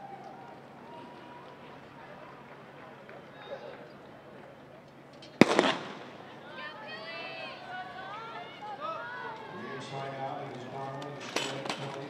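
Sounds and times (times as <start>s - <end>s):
starting pistol shot: 5.4s - 6.3s.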